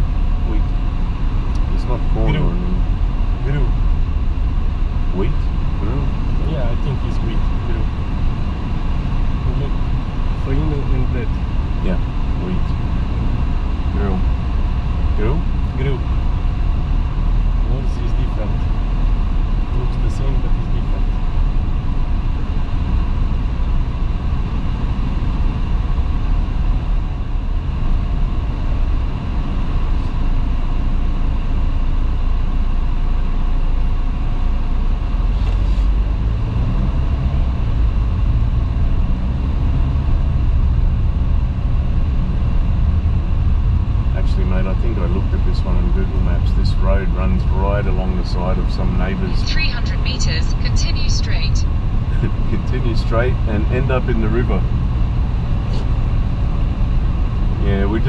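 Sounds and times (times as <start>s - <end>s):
car cabin engine and tyre rumble: 0.0s - 58.0s.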